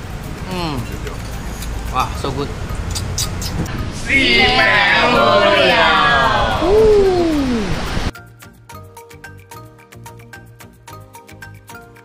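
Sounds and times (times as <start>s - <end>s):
people cheering: 4.0s - 7.9s
plucked background music: 8.1s - 12.0s.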